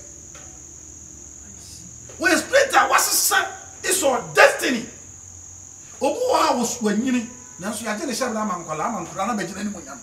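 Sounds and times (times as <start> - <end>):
high-pitched whine: 0.0 - 10.0.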